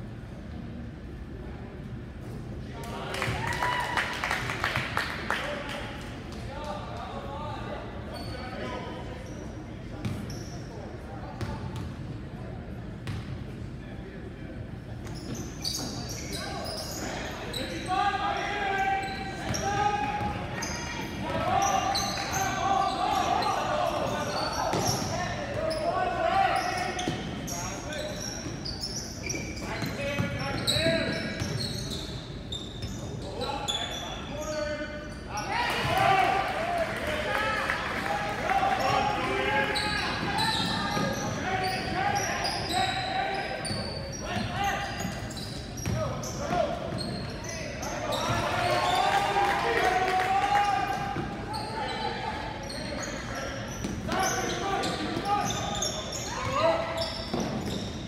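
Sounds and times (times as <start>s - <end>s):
people shouting in a gymnasium: 15.8s - 32.2s, 33.0s - 58.0s.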